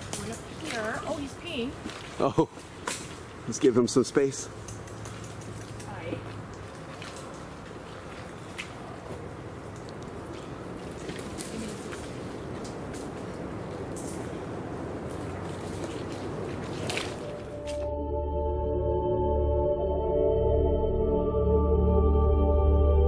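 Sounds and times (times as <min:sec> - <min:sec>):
steady outdoor noise: 0:00.0 - 0:19.1.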